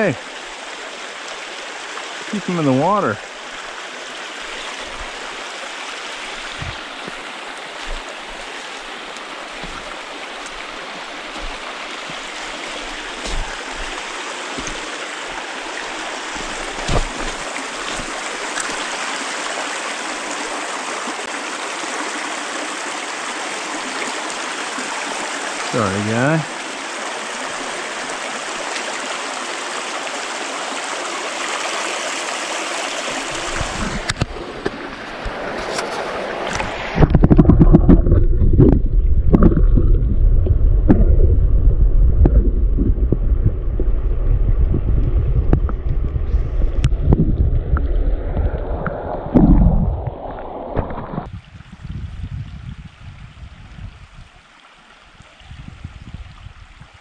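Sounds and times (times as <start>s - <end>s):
creek water running over rocks: 0.0s - 40.0s, 44.6s - 57.0s
quiet water trickle: 0.0s - 41.1s, 42.0s - 57.0s
underwater rumbling and gurgling: 6.3s - 18.8s, 33.2s - 54.1s.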